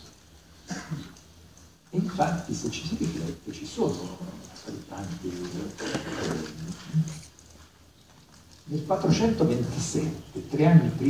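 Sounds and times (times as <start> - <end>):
man talking: 1.9 - 7.2, 8.7 - 11.0.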